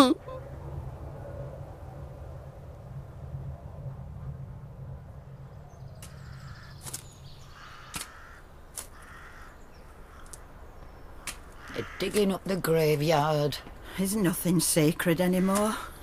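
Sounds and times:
low hum: 0.0 - 8.8
crows cawing: 6.0 - 12.6.

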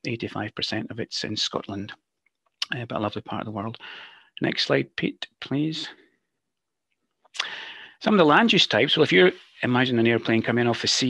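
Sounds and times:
person speaking: 0.0 - 2.0, 2.6 - 6.0, 7.4 - 11.0
sharp intake of breath: 3.8 - 4.3, 7.4 - 8.0.

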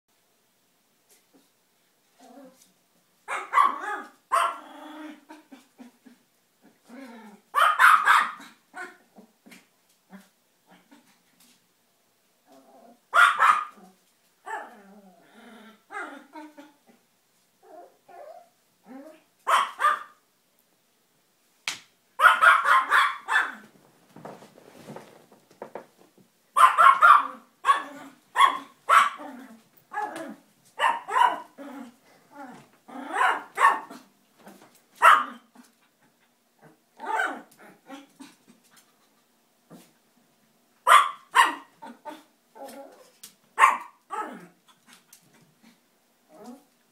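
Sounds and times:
small dog barking: 3.3 - 4.6, 7.5 - 9.0, 13.1 - 13.8, 19.4 - 20.2, 22.2 - 23.7, 26.6 - 29.3, 30.8 - 31.6, 33.1 - 34.0, 35.0 - 35.5, 37.0 - 37.5, 40.8 - 42.2, 43.6 - 44.4.

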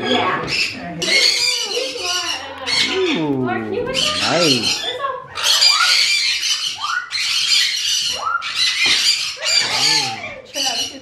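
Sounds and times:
parrot screeching: 0.0 - 3.2, 3.8 - 11.0.

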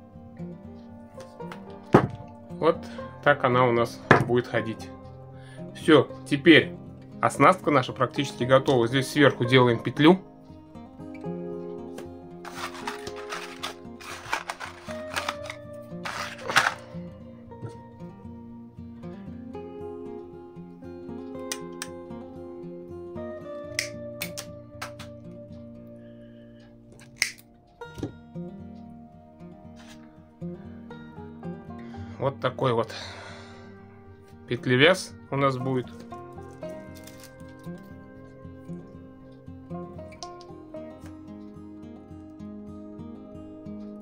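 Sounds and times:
background music: 0.0 - 44.0
rustling: 12.4 - 17.0
fishing tackle clicks: 27.0 - 27.5, 36.5 - 37.8.

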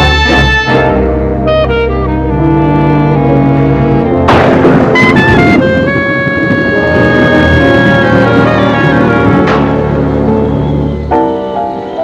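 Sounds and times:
orchestral music: 0.0 - 12.0.

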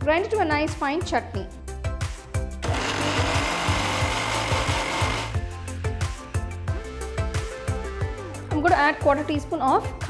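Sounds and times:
background music with steady beat: 0.0 - 10.0
mixer grinder motor grinding: 2.6 - 6.4.

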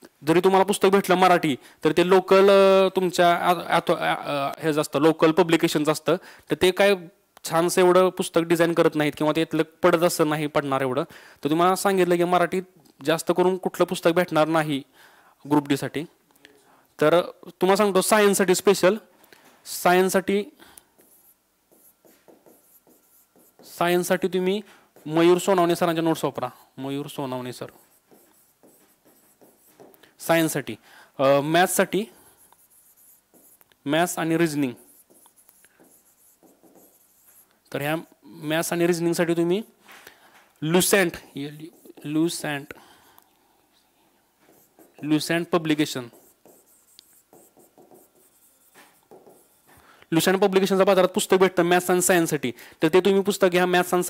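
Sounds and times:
marker writing on whiteboard: 20.0 - 26.2, 27.1 - 30.6, 31.6 - 39.8, 40.8 - 42.8, 44.4 - 50.6
man speaking: 33.8 - 34.9, 40.6 - 42.8, 45.0 - 46.2.

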